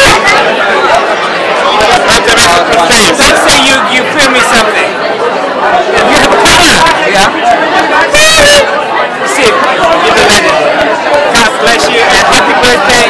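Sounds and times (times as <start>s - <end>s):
close-up speech: 0.0s - 13.0s
dense crowd chatter: 0.0s - 13.0s.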